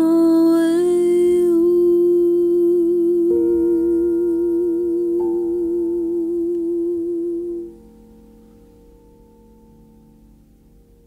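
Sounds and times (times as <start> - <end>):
woman humming with vibrato: 0.0 - 8.0
held notes: 0.0 - 11.0.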